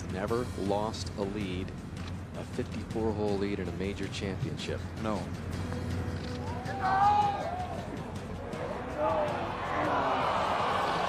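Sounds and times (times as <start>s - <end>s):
crowd noise: 6.0s - 11.0s
crowd voices of dismay: 6.4s - 11.0s.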